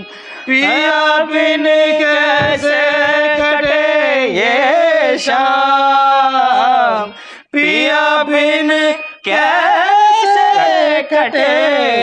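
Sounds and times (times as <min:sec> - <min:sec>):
harmonium: 0:00.0 - 0:12.0
man singing: 0:00.0 - 0:12.0.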